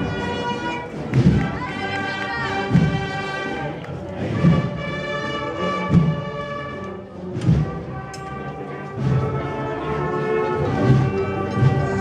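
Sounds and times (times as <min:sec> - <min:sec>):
wind band playing a slow march: 0:00.0 - 0:12.0
deep bass drum beats: 0:01.0 - 0:01.7, 0:02.6 - 0:03.3.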